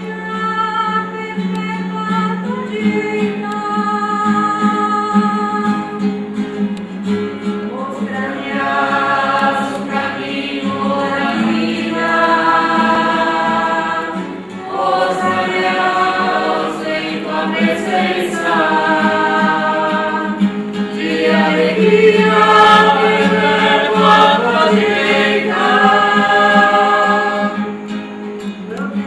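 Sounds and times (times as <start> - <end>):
acoustic guitar: 0.0 - 29.0
voices singing a slow chant: 7.7 - 28.0.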